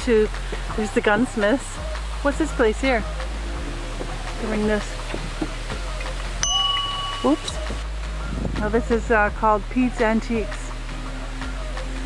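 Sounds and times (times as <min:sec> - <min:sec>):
small metal bell ringing: 0:06.4 - 0:07.7.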